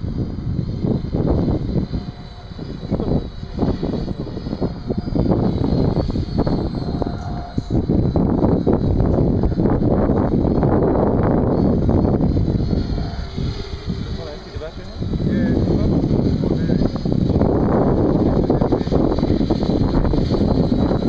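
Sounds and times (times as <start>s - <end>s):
drone propeller whine: 0.0s - 21.0s
wind buffeting microphone: 0.0s - 21.0s.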